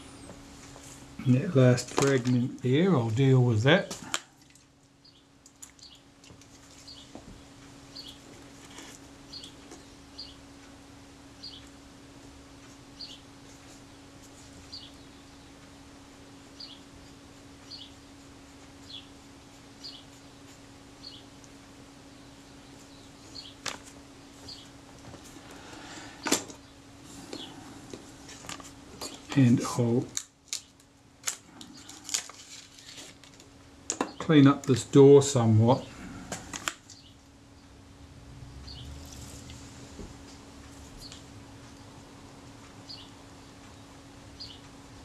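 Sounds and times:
steady low hum: 0:00.0 - 0:45.0
bird chirping: 0:09.3 - 0:10.4, 0:11.4 - 0:11.7, 0:14.7 - 0:15.6, 0:16.6 - 0:16.9, 0:19.8 - 0:20.1, 0:24.4 - 0:24.8, 0:38.6 - 0:39.0.

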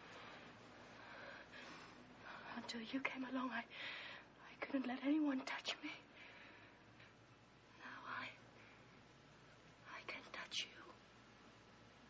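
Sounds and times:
breathy whispering: 0:07.7 - 0:08.9, 0:09.8 - 0:11.0.

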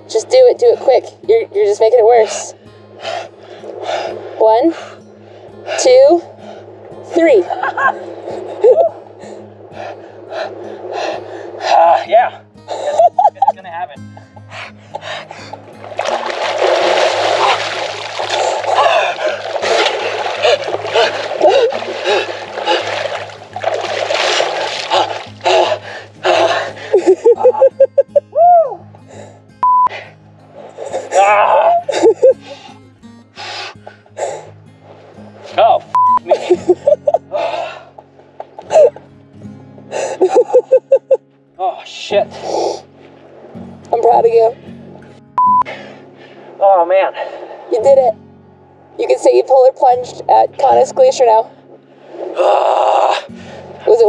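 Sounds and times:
background music: 0:00.0 - 0:54.0
heavy water splashing: 0:02.3 - 0:13.2, 0:15.0 - 0:27.7
person gasping and shouting: 0:20.4 - 0:22.9.

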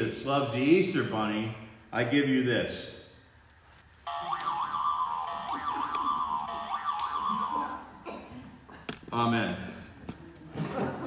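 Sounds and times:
toy warbling tune: 0:04.1 - 0:07.8.

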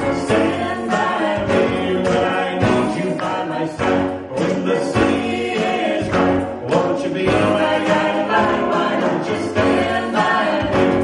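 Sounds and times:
gospel group singing in harmony: 0:00.0 - 0:11.0
instrumental accompaniment: 0:00.0 - 0:11.0.

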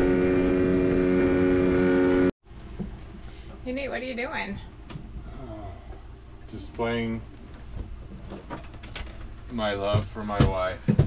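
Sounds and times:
outboard motor humming: 0:00.0 - 0:02.3.

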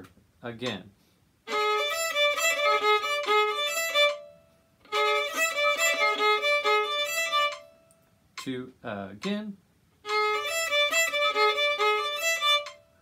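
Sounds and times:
violin playing fast notes: 0:01.5 - 0:04.3, 0:04.9 - 0:07.7, 0:10.1 - 0:12.8.

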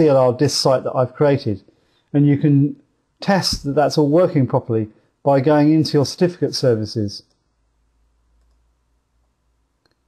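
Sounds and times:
computer mouse clicks: 0:08.3 - 0:08.7.

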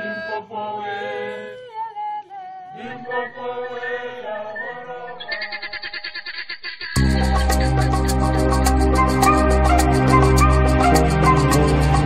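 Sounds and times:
voices chanting together: 0:00.0 - 0:05.7
quick rhythmic pulse: 0:07.0 - 0:12.0.

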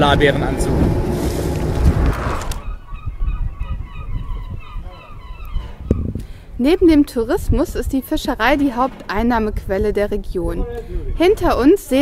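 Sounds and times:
distant birds honking: 0:00.0 - 0:06.1
low wind rumble: 0:00.0 - 0:12.0
wind noise on microphone: 0:00.0 - 0:12.0.

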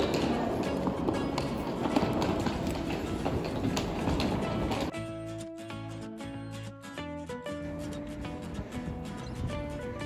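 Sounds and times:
suitcase wheels rolling over tiles: 0:00.0 - 0:04.9.

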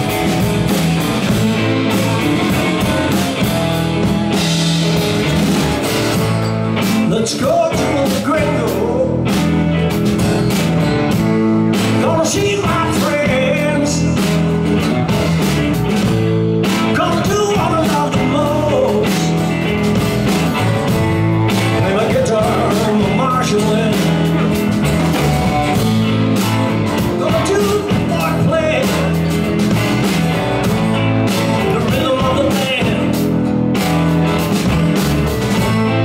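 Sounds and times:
live blues-rock band playing: 0:00.0 - 0:36.0
man singing: 0:06.9 - 0:09.6, 0:11.7 - 0:14.5, 0:16.8 - 0:19.7, 0:21.6 - 0:24.7, 0:26.9 - 0:29.5, 0:30.9 - 0:33.4.

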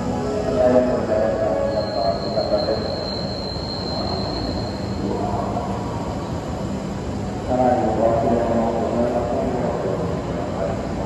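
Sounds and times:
train wheels and brakes squealing: 0:00.0 - 0:05.9
train rumble: 0:00.0 - 0:11.0.

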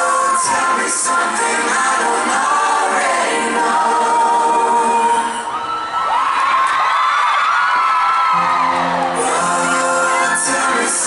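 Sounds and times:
fans whooping and screaming: 0:00.0 - 0:01.0, 0:04.4 - 0:11.0.

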